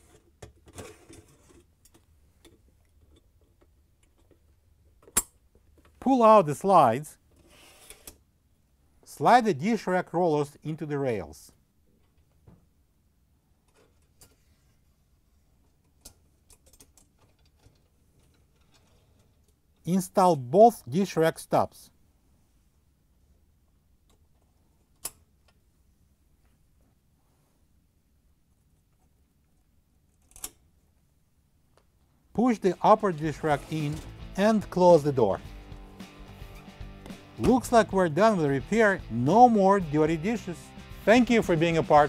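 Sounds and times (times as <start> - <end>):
dishwasher rack sliding rub: 32.8 - 34.2.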